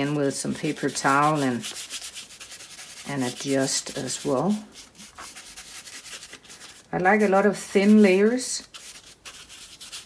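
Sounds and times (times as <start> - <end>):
bristle brush scrubbing paper: 0.0 - 10.0.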